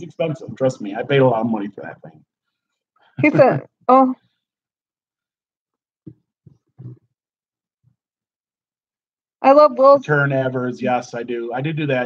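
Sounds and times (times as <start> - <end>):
people talking: 0.0 - 2.2, 3.2 - 4.2, 9.4 - 12.0.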